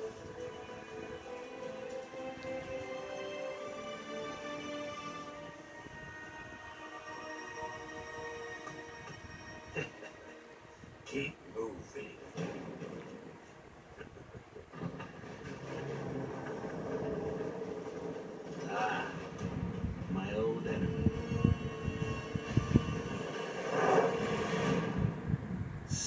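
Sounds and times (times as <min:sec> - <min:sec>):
animated film soundtrack: 0:00.0 - 0:26.0.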